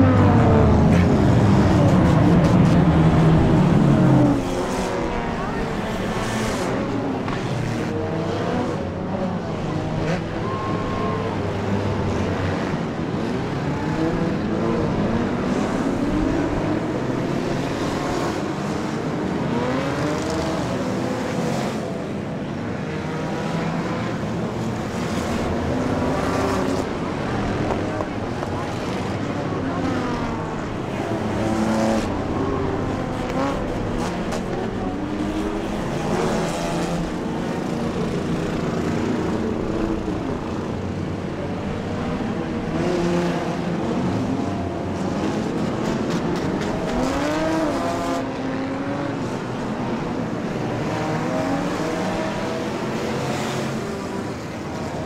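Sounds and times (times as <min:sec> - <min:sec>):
race car engines passing: 0:00.0 - 0:55.0.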